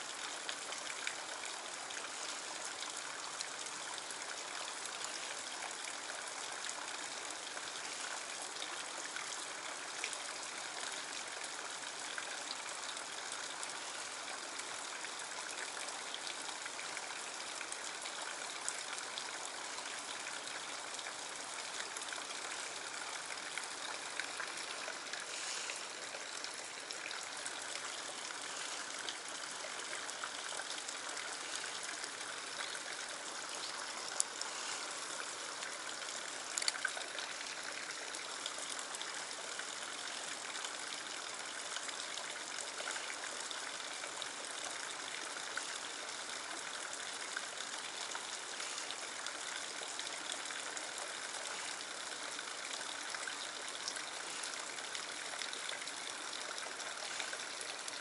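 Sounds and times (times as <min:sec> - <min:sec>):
stream trickling into a pool: 0:00.0 - 0:58.0.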